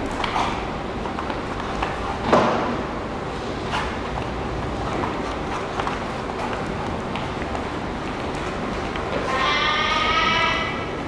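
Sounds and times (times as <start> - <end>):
dogs playing scuffle: 0.0 - 10.2.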